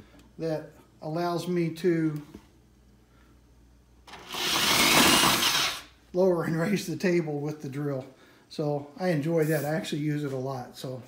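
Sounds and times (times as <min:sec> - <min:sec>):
power drill running: 0:04.1 - 0:05.9.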